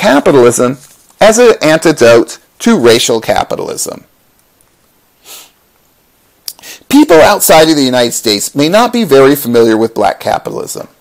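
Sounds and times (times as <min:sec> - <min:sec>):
person sniffing: 0:05.2 - 0:05.6, 0:06.5 - 0:06.9.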